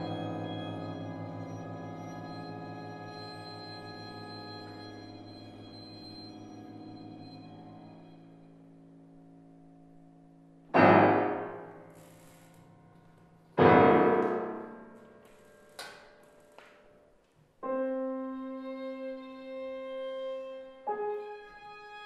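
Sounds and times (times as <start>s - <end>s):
loud piano chords ringing: 0.0s - 11.9s, 13.5s - 15.2s, 17.6s - 22.0s.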